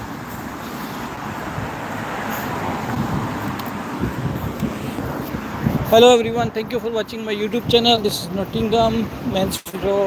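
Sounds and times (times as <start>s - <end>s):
cars driving past: 0.0s - 10.0s.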